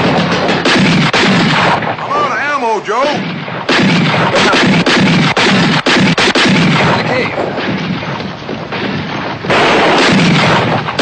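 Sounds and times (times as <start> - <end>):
rapid gunshots: 0.0 - 11.0.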